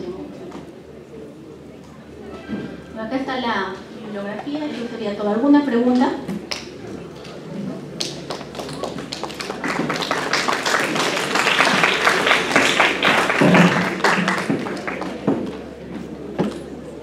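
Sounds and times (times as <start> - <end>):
audience applauding: 8.0 - 15.6.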